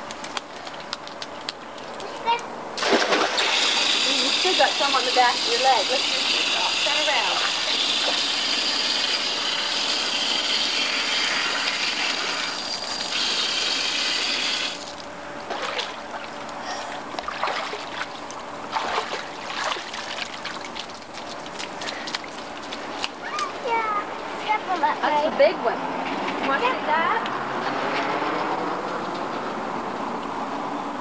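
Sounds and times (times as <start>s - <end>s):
distant voices: 0.0s - 9.8s, 15.0s - 31.0s
water running: 2.8s - 16.6s, 17.2s - 25.6s.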